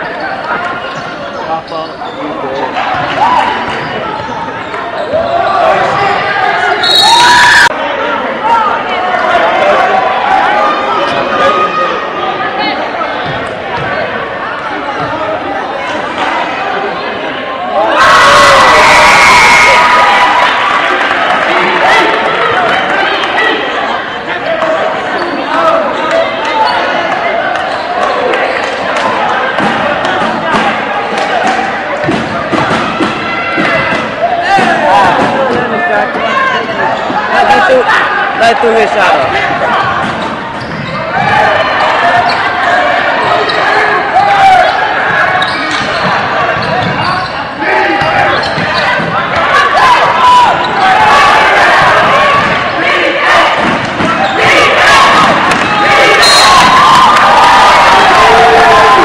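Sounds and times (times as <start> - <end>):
crowd cheering and shouting: 0.0 - 59.0
voices of players and spectators: 0.0 - 59.0.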